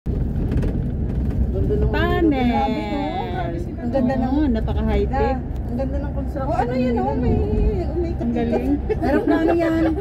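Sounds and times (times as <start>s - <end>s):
vehicle rumble in tunnel: 0.1s - 10.0s.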